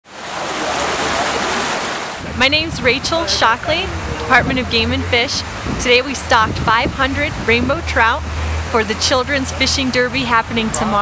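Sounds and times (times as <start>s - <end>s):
water rushing over rocks: 0.0s - 11.0s.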